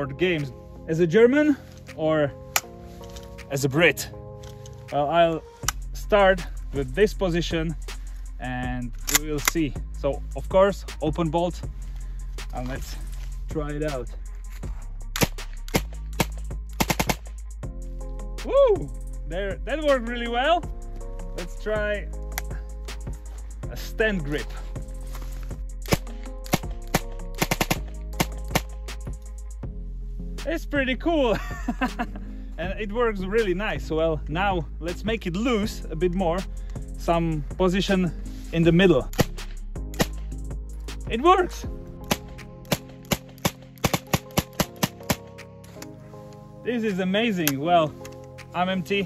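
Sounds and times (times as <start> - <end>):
submachine gun firing: 15.2 - 17.3, 25.9 - 28.7, 42.1 - 45.2.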